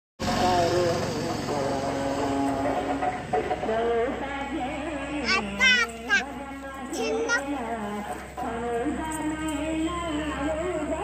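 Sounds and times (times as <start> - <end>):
backing music: 0.2 - 11.0
person singing: 0.2 - 11.0.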